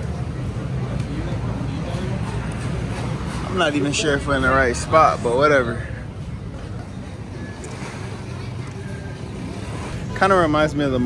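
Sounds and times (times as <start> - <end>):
outdoor street noise: 0.0 - 11.0.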